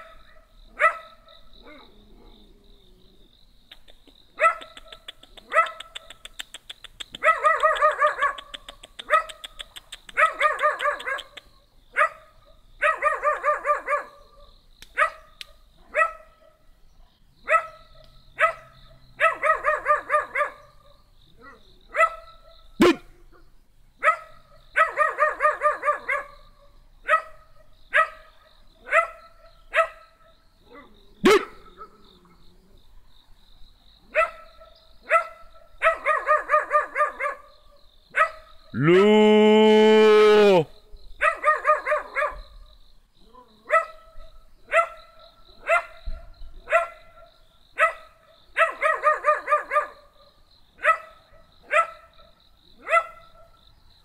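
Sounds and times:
small dog barking: 0.8 - 1.9, 4.4 - 6.3, 7.2 - 14.2, 15.0 - 16.6, 17.4 - 20.7, 21.4 - 23.1, 24.0 - 26.4, 27.0 - 30.0, 30.7 - 32.0, 34.1 - 37.5, 38.1 - 38.5, 41.2 - 42.4, 43.3 - 44.1, 44.7 - 45.0, 45.6 - 50.1, 50.8 - 53.5.

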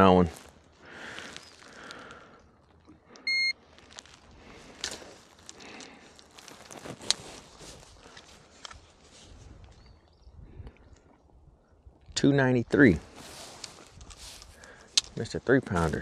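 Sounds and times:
light clicks and rustling: 2.6 - 9.9, 13.3 - 16.0
digital scale beep: 3.2 - 3.6.

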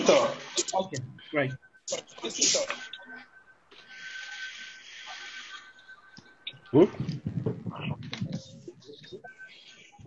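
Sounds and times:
constant high-pitched tone: 0.0 - 10.0.

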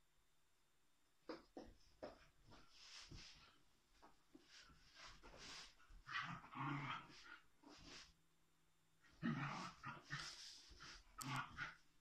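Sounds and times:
dogs growling: 6.0 - 8.0, 9.1 - 11.8.

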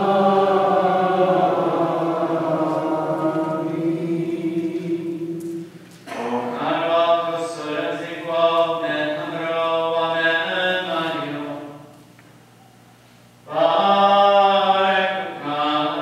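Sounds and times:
unaccompanied liturgical chant: 0.0 - 11.9, 13.5 - 16.0.

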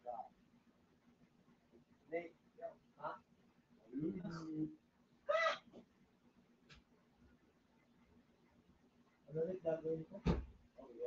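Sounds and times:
short high-pitched vocal call: 5.3 - 5.7.

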